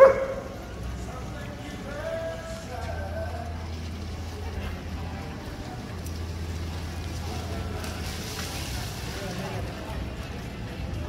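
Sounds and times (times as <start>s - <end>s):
dog barking: 0.0s - 0.5s.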